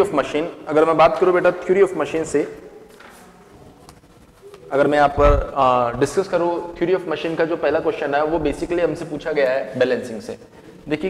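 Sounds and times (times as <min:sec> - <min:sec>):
man speaking: 0:00.0 - 0:02.6, 0:04.7 - 0:11.0.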